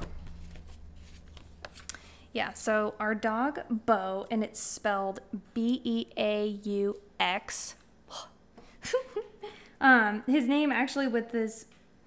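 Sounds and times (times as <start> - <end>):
paper pages rustling: 0.0 - 1.9
steady low hum: 0.0 - 12.0.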